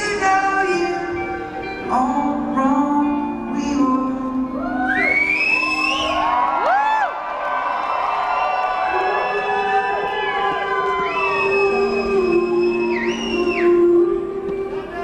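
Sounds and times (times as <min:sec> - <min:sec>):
audience cheering and whooping: 0:04.6 - 0:13.8
high whistles: 0:04.9 - 0:06.3, 0:11.0 - 0:13.9.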